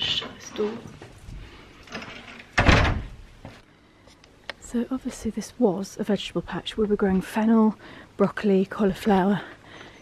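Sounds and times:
wooden door thud: 2.6s - 3.2s.

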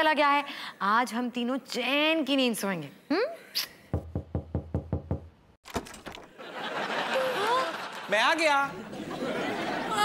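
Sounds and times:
rapid knocking on a door: 4.0s - 5.3s.

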